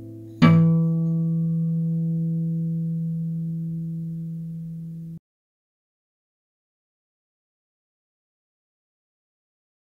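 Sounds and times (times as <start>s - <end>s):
low classical guitar note: 0.0s - 5.2s.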